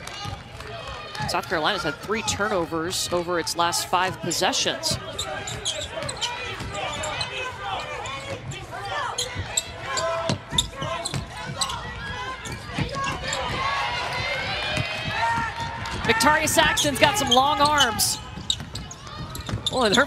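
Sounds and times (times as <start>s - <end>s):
players calling out: 1.3s - 20.0s
sneakers squeaking: 4.2s - 20.0s.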